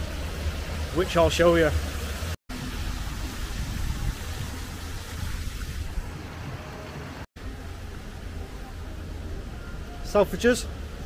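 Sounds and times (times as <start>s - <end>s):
city street noise: 0.0s - 11.0s.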